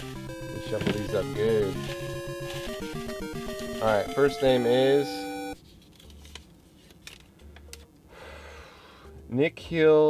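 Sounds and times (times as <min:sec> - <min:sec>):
held electronic tone: 0:00.0 - 0:05.6.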